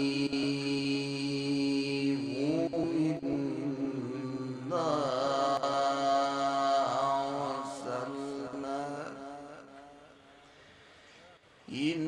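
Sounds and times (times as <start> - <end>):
man chanting recitation: 0.0 - 10.2, 11.7 - 12.0.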